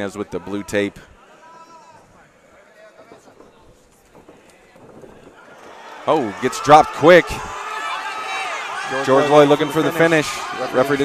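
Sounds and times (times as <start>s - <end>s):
faint crowd noise: 0.0s - 11.0s
distant shouting voices: 5.3s - 11.0s.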